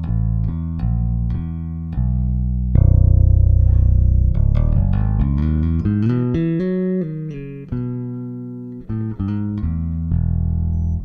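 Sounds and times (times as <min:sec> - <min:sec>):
electric bass plucked notes: 0:00.0 - 0:11.0.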